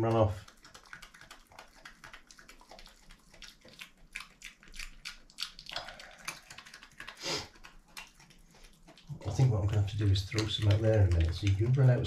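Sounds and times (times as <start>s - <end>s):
badger crunching dry food: 0.4s - 12.0s.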